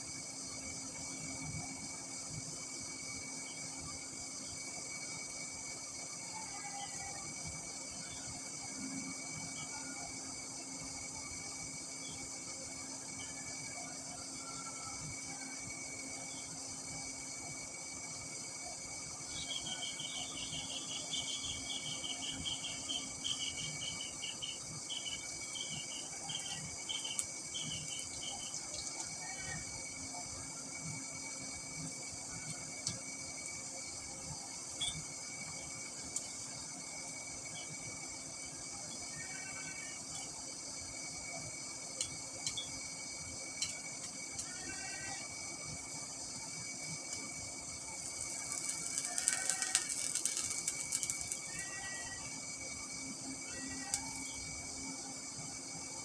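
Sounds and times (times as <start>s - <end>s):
faint steady hum: 0.0s - 56.0s
high-pitched insect chorus: 0.0s - 56.0s
burst of crackling noise: 47.8s - 51.8s.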